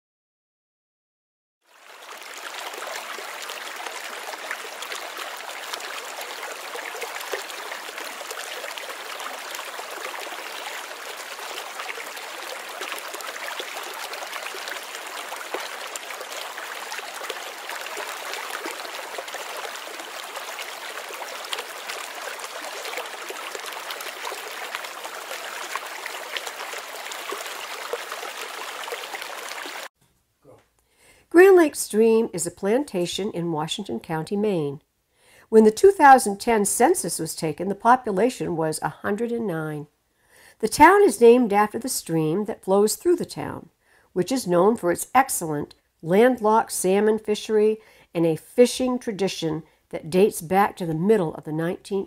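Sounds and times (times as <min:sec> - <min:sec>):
stream water rushing: 0:01.7 - 0:29.9.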